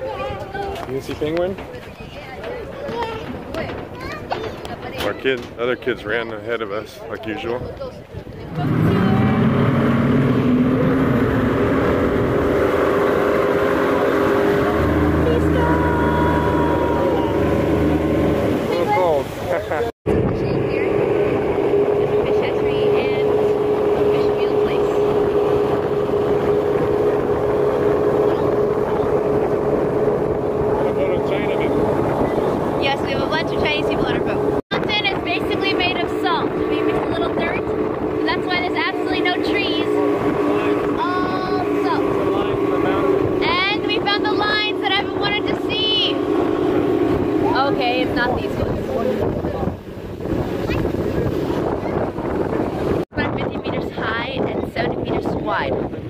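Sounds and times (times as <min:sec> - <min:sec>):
rush of wind and water: 0:00.0 - 0:56.0
speedboat engine droning: 0:00.0 - 0:56.0.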